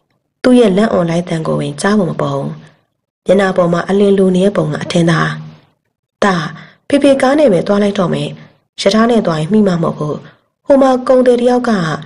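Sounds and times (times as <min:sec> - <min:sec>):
person narrating: 0:00.5 - 0:12.0.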